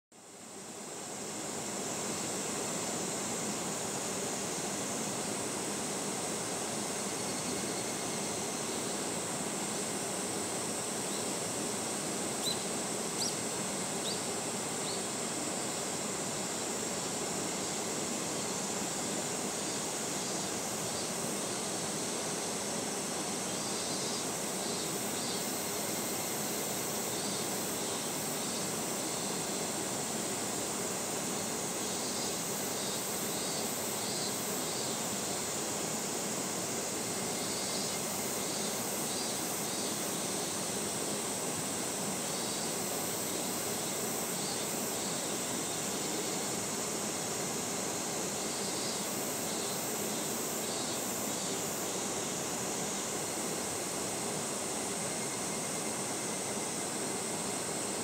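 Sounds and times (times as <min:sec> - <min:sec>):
high insect drone: 0:00.2 - 0:58.0.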